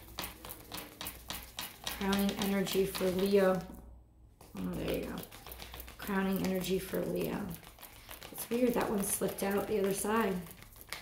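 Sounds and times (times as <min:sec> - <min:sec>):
deck of cards being shuffled: 0:00.0 - 0:03.6, 0:04.4 - 0:11.0.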